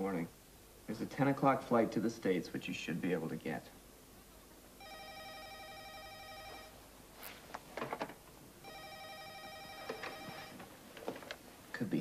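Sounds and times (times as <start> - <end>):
telephone ringing: 4.8 - 6.8, 8.6 - 10.7.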